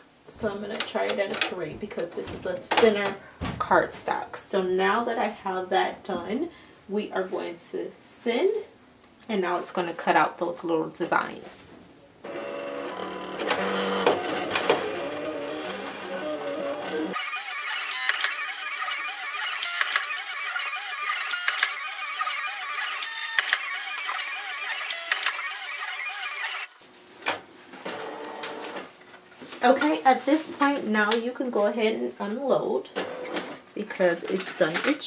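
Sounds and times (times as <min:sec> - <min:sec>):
cutting machine motors whirring: 0:12.3 - 0:26.7.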